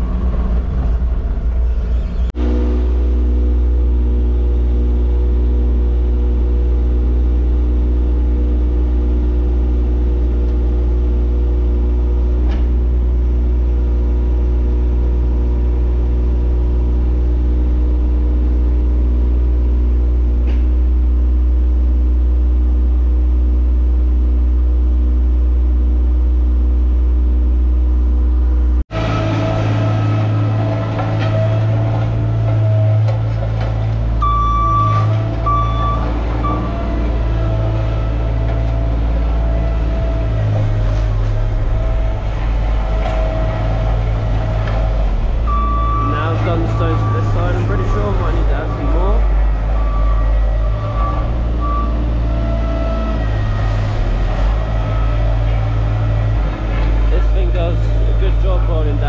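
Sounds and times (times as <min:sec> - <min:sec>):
diesel engine running steadily: 0:00.0 - 0:59.0
steady high tone: 0:40.2 - 0:59.0.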